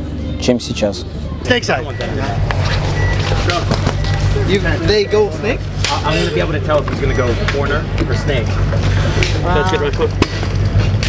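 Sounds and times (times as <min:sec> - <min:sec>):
men talking: 0:00.4 - 0:08.6.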